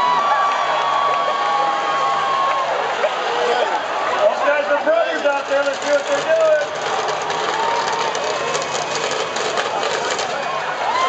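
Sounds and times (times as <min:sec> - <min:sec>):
shouts from crowd: 0:00.0 - 0:05.1, 0:10.6 - 0:11.0
crowd noise: 0:00.0 - 0:11.0
engines running: 0:03.0 - 0:11.0
rapid rattling clatter: 0:04.5 - 0:10.8.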